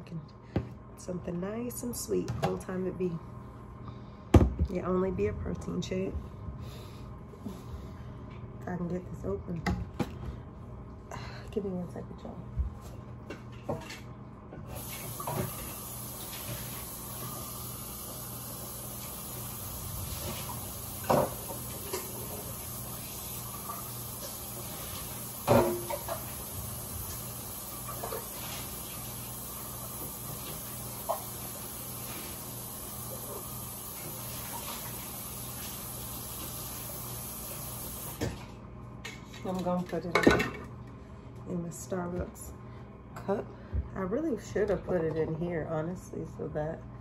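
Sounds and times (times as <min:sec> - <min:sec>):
steady hum and hiss: 0:00.0 - 0:47.0.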